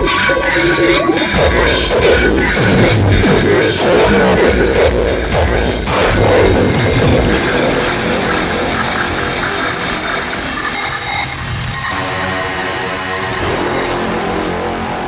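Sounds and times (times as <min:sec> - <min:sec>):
hardcore electronic music: 0:00.0 - 0:15.0.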